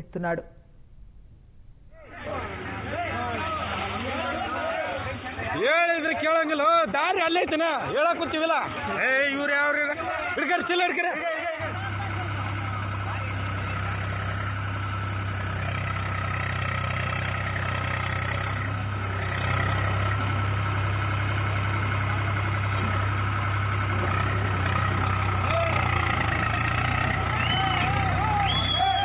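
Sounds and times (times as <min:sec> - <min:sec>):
tractor engine running: 0:00.0 - 0:04.2, 0:11.6 - 0:29.0.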